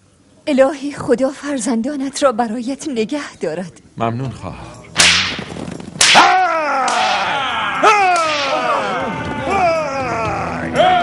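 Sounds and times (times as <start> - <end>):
whip cracks: 5.0 - 7.4, 8.1 - 8.8
pained cry: 6.2 - 11.0.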